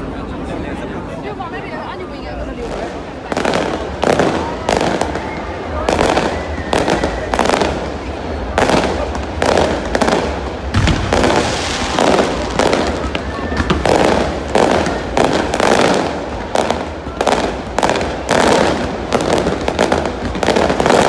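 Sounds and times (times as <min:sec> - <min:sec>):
fireworks bangs and crackles: 0:02.3 - 0:21.0.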